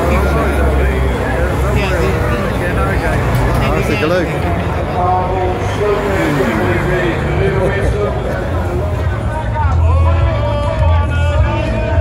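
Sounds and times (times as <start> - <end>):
car driving past: 0.0 - 9.7
people talking: 0.0 - 12.0.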